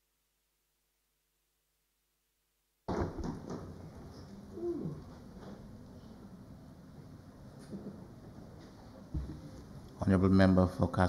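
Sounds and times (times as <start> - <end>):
knocks and rustles: 2.9 - 4.4.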